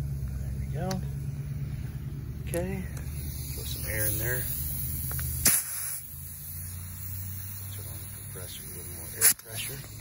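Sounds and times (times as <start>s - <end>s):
short hiss of air: 3.0s - 10.0s.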